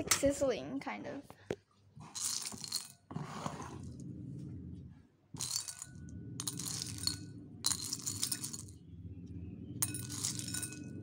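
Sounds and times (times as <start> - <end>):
ice pieces rattling in a bowl: 2.1 - 3.0, 5.4 - 8.7, 9.8 - 10.9.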